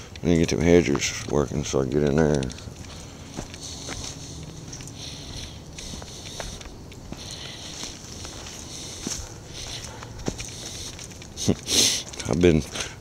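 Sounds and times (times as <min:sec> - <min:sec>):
footsteps on leaves and twigs: 0:00.4 - 0:13.0.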